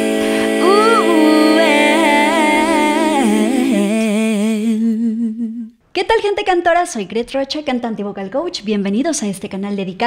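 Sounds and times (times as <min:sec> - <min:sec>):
wordless sung melody with vibrato: 0:00.0 - 0:05.8.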